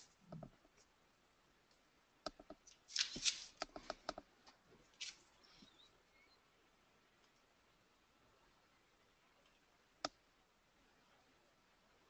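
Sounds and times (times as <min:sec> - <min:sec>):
faint high chirps: 0:05.4 - 0:06.7.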